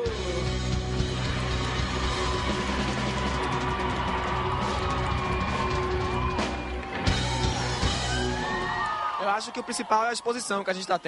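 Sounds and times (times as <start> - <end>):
rock band playing instrumental: 0.0 - 8.8.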